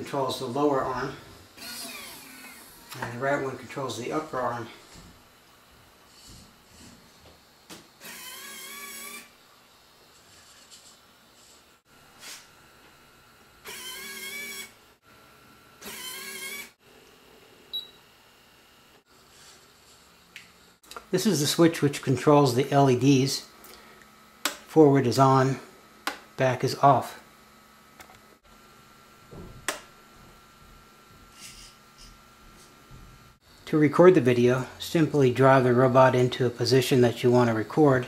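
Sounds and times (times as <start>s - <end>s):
electric motor whining: 1.6s - 3.0s, 8.0s - 9.4s, 13.6s - 14.8s, 15.8s - 16.8s
sharp click: 24.4s - 24.7s.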